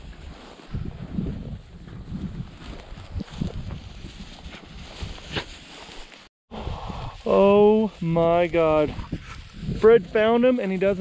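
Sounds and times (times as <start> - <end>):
wind buffeting microphone: 0.0 - 5.4, 6.5 - 10.4
rustling of dry grass: 0.0 - 11.0.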